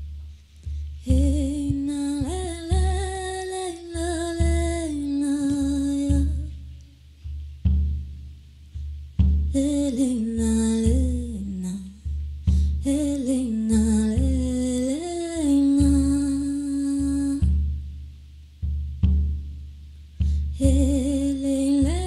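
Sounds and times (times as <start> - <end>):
slow low drum beat: 0.0 - 22.0
woman singing long gliding notes: 1.0 - 6.6, 9.6 - 12.0, 12.8 - 17.5, 20.6 - 22.0.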